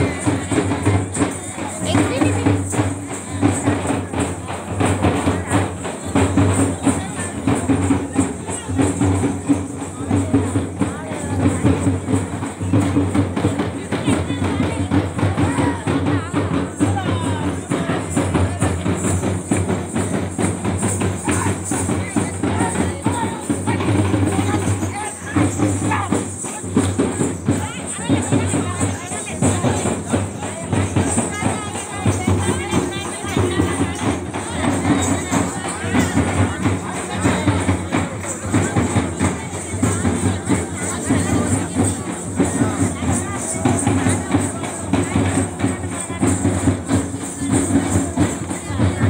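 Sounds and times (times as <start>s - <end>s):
crowd voices: 0.0s - 49.0s
drums beaten in fast rhythm: 0.0s - 49.0s.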